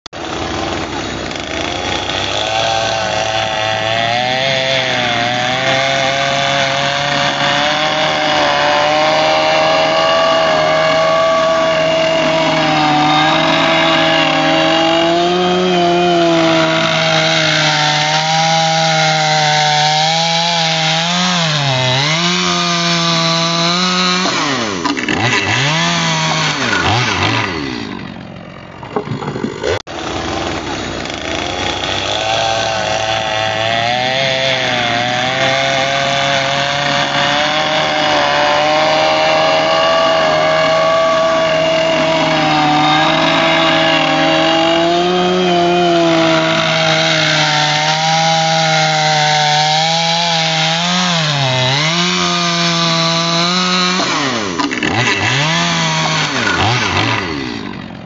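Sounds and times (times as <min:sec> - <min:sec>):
chainsaw cutting wood: 0:00.2 - 0:58.0.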